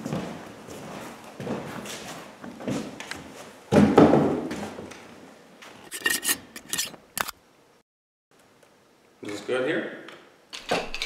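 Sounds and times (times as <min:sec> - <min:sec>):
handling scrapes and rubs: 0:05.8 - 0:07.3.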